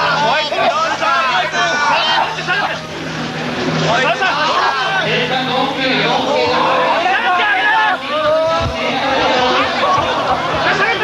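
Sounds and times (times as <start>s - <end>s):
voices talking and shouting: 0.0s - 11.0s.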